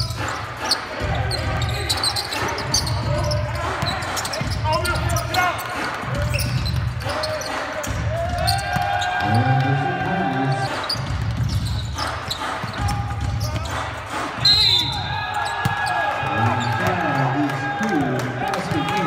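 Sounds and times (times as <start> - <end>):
sneakers squeaking on hardwood: 0.7 - 9.2, 10.7 - 16.9
players shouting: 7.0 - 10.9, 12.3 - 19.0
referee's whistle: 14.4 - 15.4.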